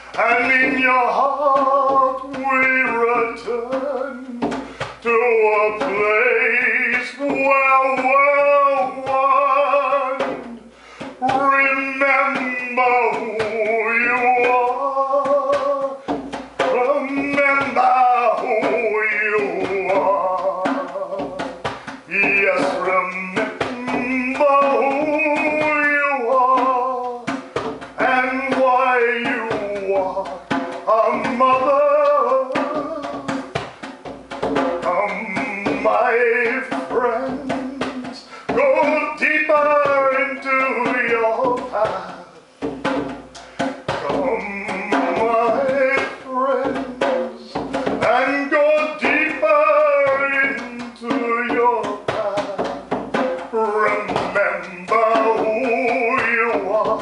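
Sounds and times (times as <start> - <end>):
male overtone singing: 0.0 - 57.0
soft frame drum strokes: 0.0 - 57.0
breaths: 4.6 - 5.0, 10.6 - 11.2, 16.0 - 16.3, 21.7 - 22.0, 38.2 - 38.6, 43.3 - 43.8.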